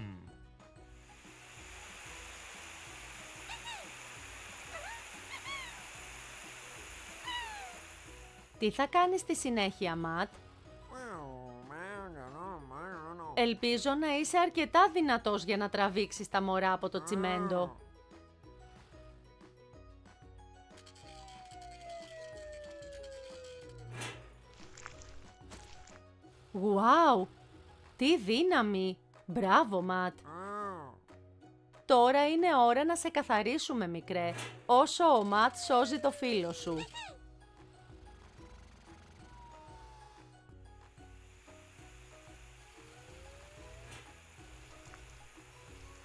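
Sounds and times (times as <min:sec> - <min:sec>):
soft background music: 0:00.0 - 0:46.0
water hissing from hose spray: 0:01.0 - 0:08.6, 0:41.0 - 0:46.0
high squeaky cartoon calls: 0:03.5 - 0:03.9, 0:04.7 - 0:05.8, 0:07.3 - 0:07.8, 0:35.1 - 0:37.2
descending whistle slide: 0:04.6 - 0:06.1, 0:07.2 - 0:08.2, 0:21.0 - 0:23.9, 0:35.2 - 0:37.1, 0:39.0 - 0:40.3, 0:42.8 - 0:44.1
cartoon character exclamation: 0:17.0 - 0:17.7, 0:30.2 - 0:31.0, 0:35.4 - 0:37.2.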